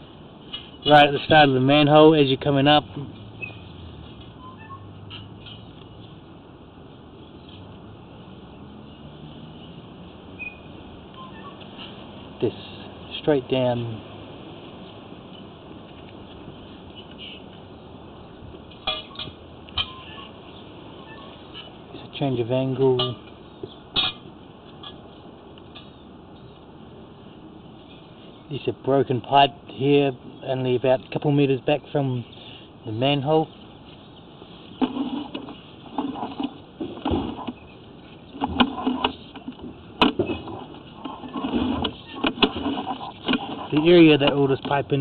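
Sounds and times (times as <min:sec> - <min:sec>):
steady low hiss: 0:00.0 - 0:45.0.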